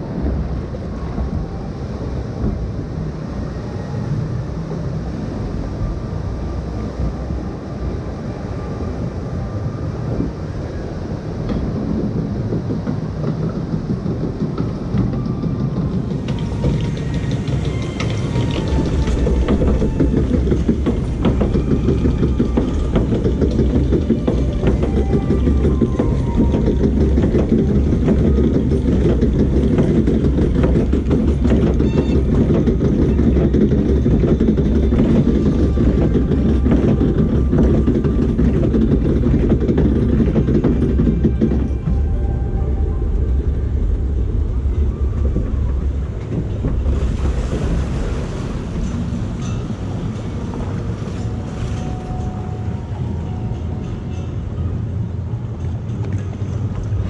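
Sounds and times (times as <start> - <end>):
log flume lift rumble and clatter: 0.0 - 57.0.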